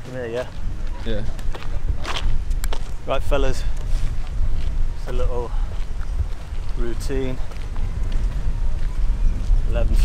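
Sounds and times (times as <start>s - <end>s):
footsteps on sand: 0.0s - 10.0s
steady low rumble: 0.0s - 10.0s.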